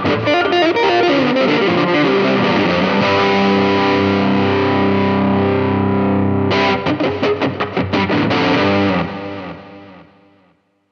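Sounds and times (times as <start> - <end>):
electric guitar chords: 0.0 - 10.8.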